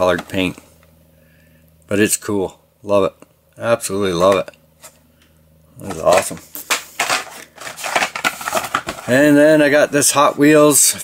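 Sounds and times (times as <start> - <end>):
plastic blister packs crackling: 5.9 - 9.6.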